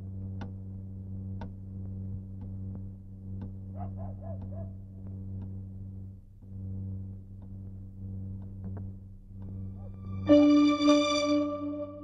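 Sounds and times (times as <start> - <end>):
steady low drone: 0.0 - 12.0
wall clock ticking: 3.3 - 4.8.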